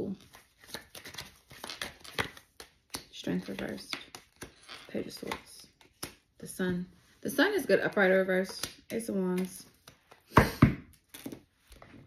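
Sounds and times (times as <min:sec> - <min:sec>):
cards flicking and tapping: 0:00.3 - 0:06.3, 0:08.4 - 0:11.4.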